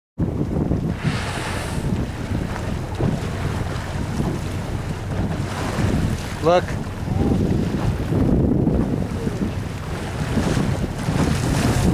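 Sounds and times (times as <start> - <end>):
choppy water washing: 0.2 - 11.9
wind buffeting microphone: 0.2 - 11.9.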